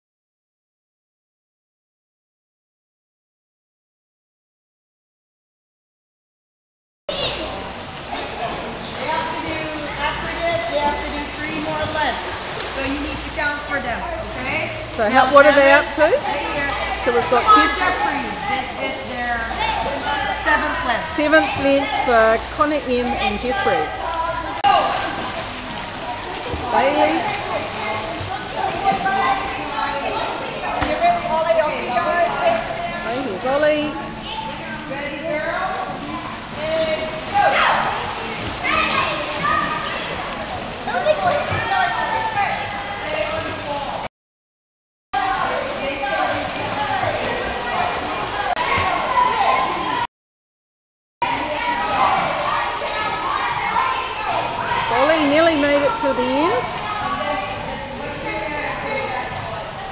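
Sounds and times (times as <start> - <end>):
children splashing in pool: 7.1 - 14.9, 15.6 - 33.2, 34.2 - 44.0, 45.2 - 50.1, 51.2 - 59.9
voices echoing: 7.2 - 44.0, 51.2 - 59.9.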